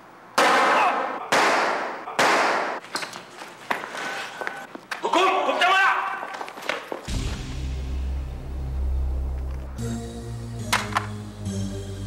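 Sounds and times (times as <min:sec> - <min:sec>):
handgun shots ringing: 0:00.4 - 0:02.8.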